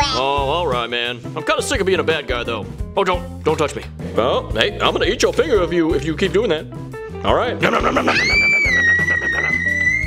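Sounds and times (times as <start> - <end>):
background music: 0.0 - 10.0
boy's high-pitched playful scream: 8.1 - 10.0.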